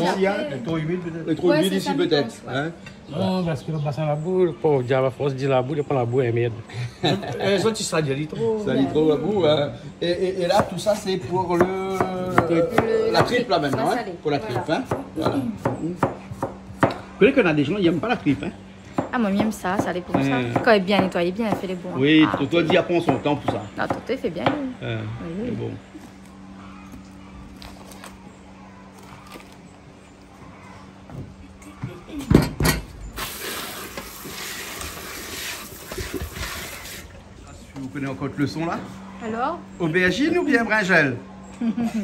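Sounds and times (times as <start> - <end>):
knife chopping on cutting board: 11.5 - 14.0, 14.7 - 17.0, 19.0 - 21.7, 22.4 - 24.6.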